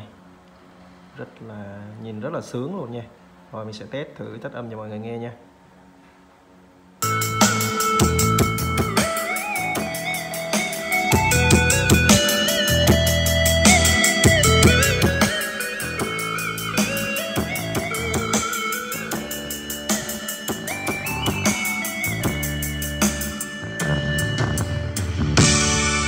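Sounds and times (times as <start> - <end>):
music with guitar and drums: 7.0 - 26.0.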